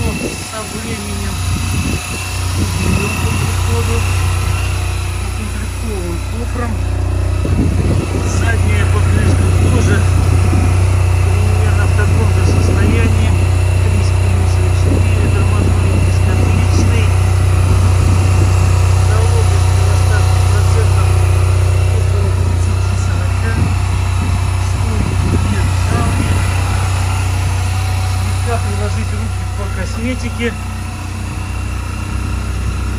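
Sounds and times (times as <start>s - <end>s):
scooter engine idling: 0.0s - 32.9s.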